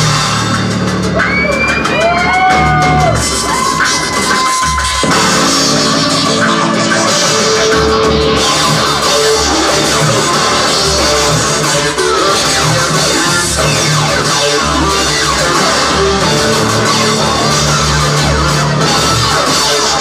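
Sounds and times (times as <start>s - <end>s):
bass line: 0.0s - 20.0s
industrial rock band playing: 0.0s - 20.0s.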